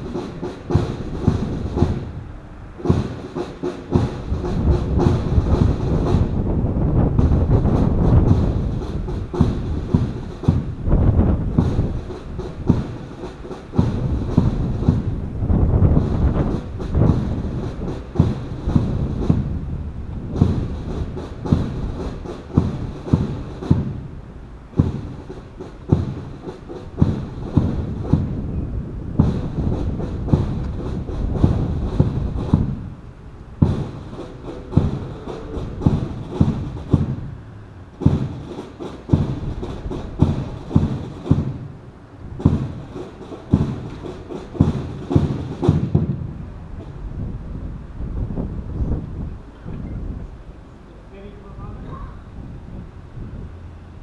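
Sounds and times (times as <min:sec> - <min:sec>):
low wind rumble on microphone: 0:00.0 - 0:54.0.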